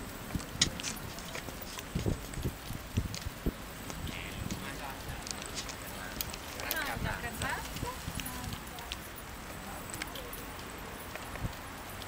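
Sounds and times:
dog paws trotting on pavement: 0.0 - 12.0.

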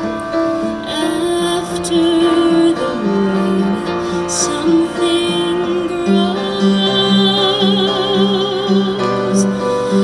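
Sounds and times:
piano chords: 0.0 - 10.0
woman singing: 0.8 - 10.0.

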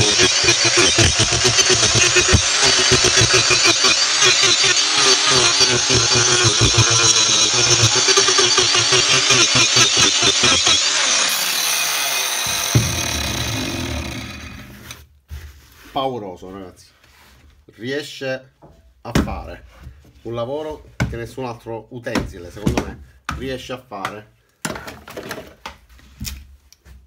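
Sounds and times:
angle grinder cutting wood: 0.0 - 15.0
grinder disc spinning down: 0.0 - 15.0
knock: 12.5 - 13.3.

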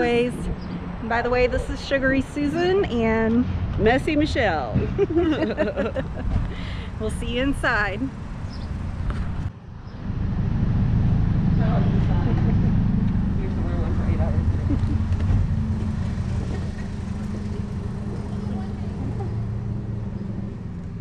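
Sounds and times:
low rumble and hum: 0.0 - 21.0.

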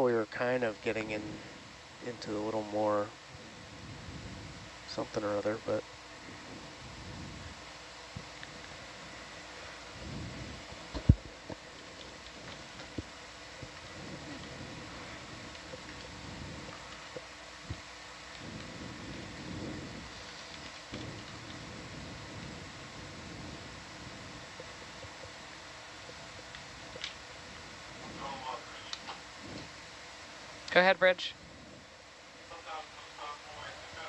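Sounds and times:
low background room noise: 0.0 - 34.0
faint clicks: 20.2 - 21.6.

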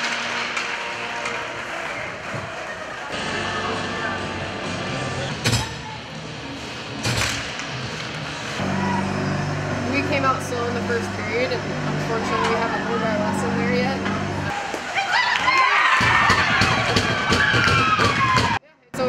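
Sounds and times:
sharp impacts from hockey play: 0.0 - 3.2, 14.5 - 18.6
arena music: 0.0 - 14.9
crowd noise: 0.0 - 18.6.

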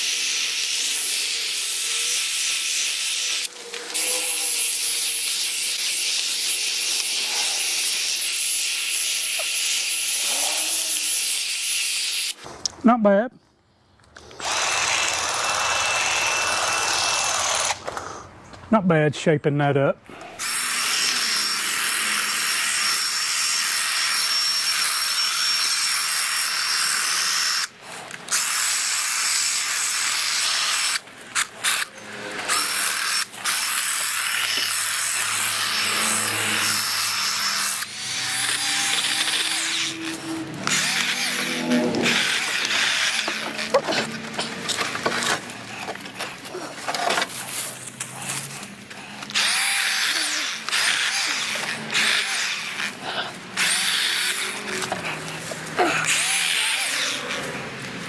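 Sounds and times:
hedge trimmer cutting branches: 0.0 - 12.8, 14.2 - 18.2, 20.1 - 58.0.

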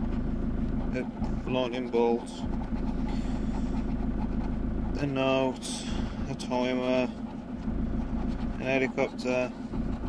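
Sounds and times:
continuous low drone: 0.0 - 10.0
scratchcard being scratched: 0.7 - 5.6, 6.3 - 10.0.

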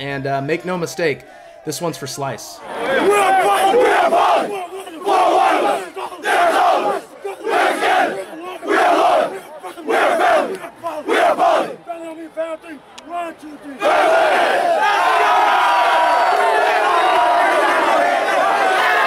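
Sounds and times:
group shouting a rhythmic chant: 2.6 - 11.9, 13.8 - 19.0.

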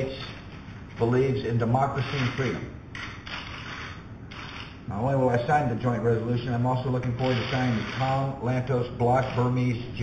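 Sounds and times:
person speaking: 0.0 - 2.8, 4.9 - 10.0
camera shutters clicking: 2.2 - 3.7.

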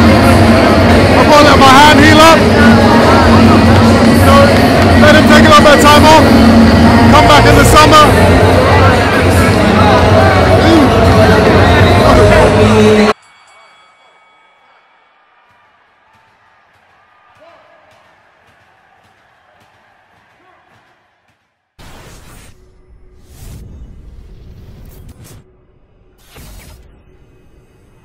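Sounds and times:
music: 0.0 - 21.0.

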